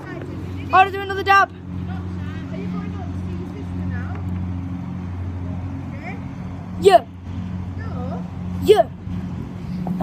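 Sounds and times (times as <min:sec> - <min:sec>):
low engine-like hum: 0:00.0 - 0:10.0.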